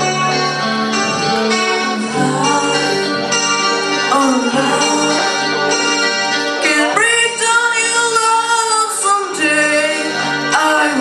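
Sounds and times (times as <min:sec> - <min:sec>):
backing music: 0:00.0 - 0:11.0
young person singing: 0:00.7 - 0:05.6, 0:06.6 - 0:11.0.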